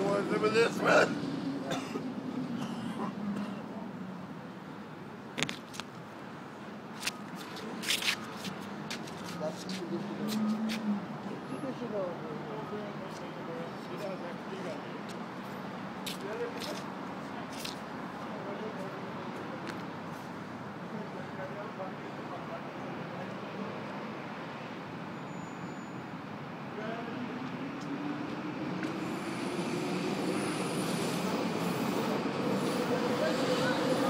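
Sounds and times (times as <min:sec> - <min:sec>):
traffic hum: 0:00.0 - 0:34.0.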